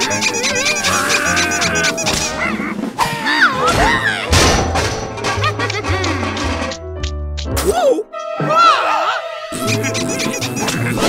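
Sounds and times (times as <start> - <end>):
orchestral score: 5.0 - 11.0.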